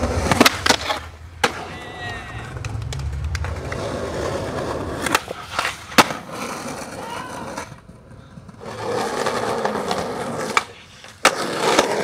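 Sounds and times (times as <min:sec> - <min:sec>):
skateboard clacks: 0:00.0 - 0:12.0
skateboard wheels rolling on concrete: 0:00.0 - 0:12.0.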